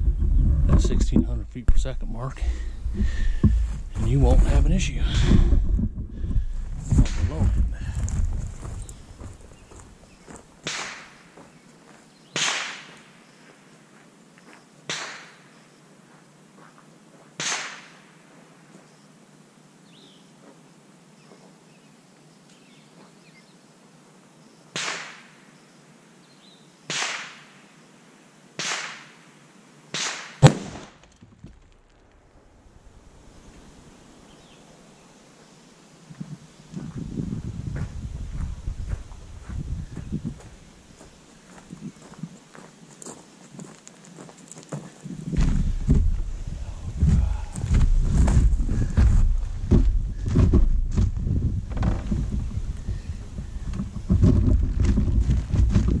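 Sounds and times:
loud rifle shot crack: 10.6s - 11.2s, 12.4s - 13.0s, 24.8s - 25.3s, 26.9s - 27.5s, 28.6s - 29.2s, 29.9s - 31.1s.

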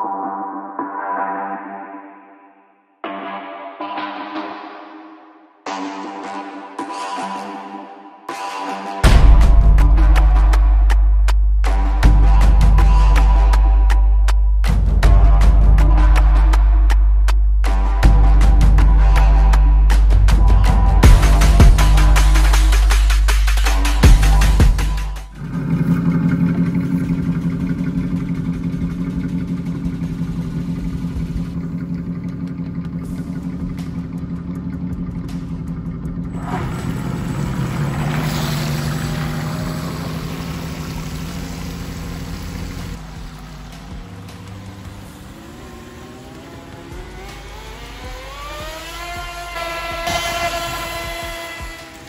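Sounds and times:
music: 0.0s - 25.4s, 26.6s - 37.2s, 43.0s - 52.0s
model boat motor humming: 25.4s - 52.0s.

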